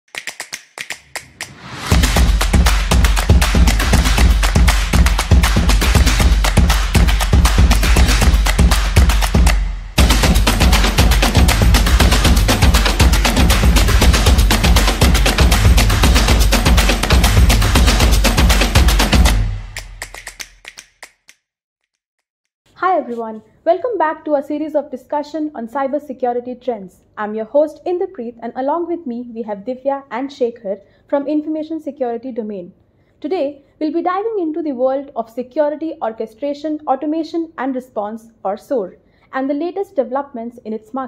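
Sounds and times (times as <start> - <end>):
intro music: 1.3 - 20.4
rising whoosh: 1.4 - 2.4.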